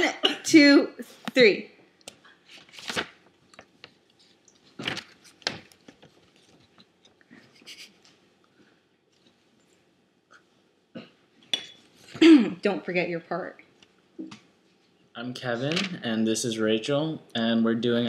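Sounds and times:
quiet clicks and rustles: 2.0 - 9.9.

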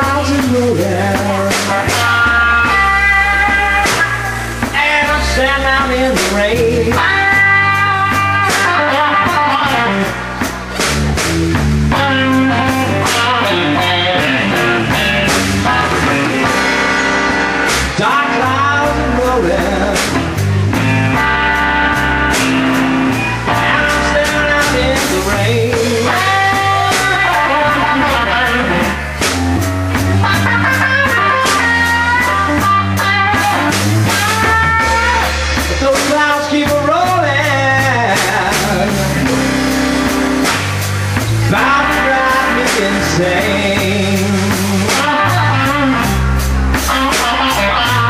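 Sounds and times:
drum kit: 0.0 - 48.0
electric bass: 0.0 - 48.0
electric guitar lead lines: 0.0 - 48.0.

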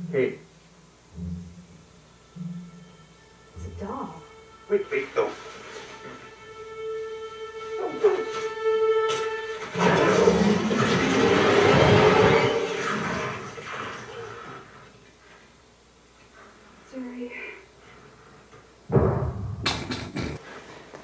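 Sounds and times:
tense string chord: 1.1 - 12.8.

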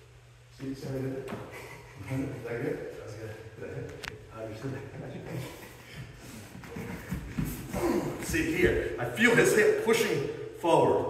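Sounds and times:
bare feet shuffling on mats: 6.0 - 8.9.

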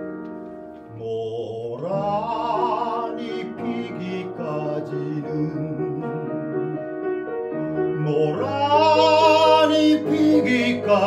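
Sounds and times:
piano chords: 0.0 - 11.0
baritone voice singing: 0.9 - 6.9, 7.8 - 11.0.

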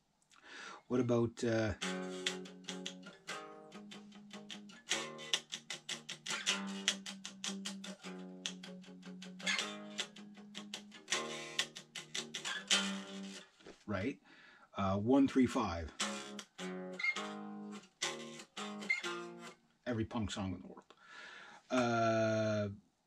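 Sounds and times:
electric guitar strumming chords: 1.8 - 13.4, 16.0 - 19.5.

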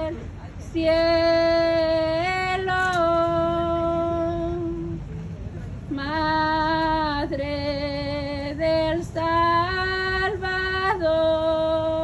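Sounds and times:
woman singing a hymn unaccompanied: 0.0 - 5.0, 5.9 - 12.0.

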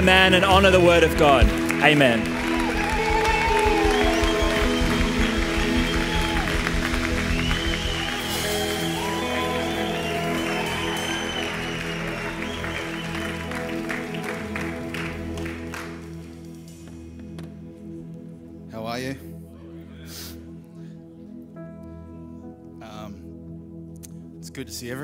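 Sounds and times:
audience applause: 0.0 - 16.5
keyboard chord pad: 0.0 - 25.0
steady low beat: 2.3 - 8.3.

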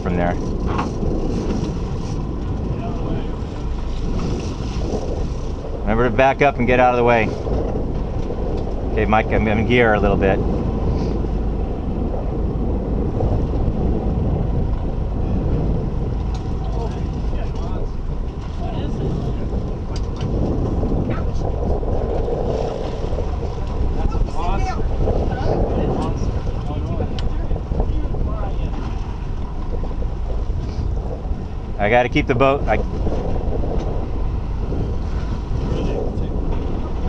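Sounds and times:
boat engines running: 0.0 - 37.0
wind noise on microphone: 0.0 - 37.0.

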